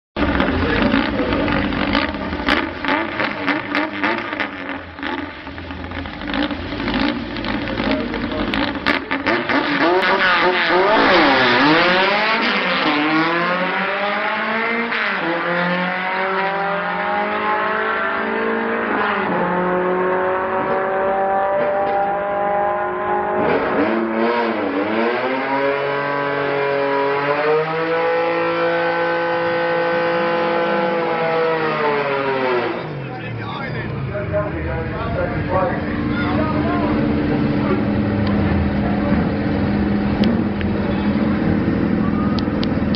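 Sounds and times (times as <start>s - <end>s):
van engines revving: 0.2s - 42.9s.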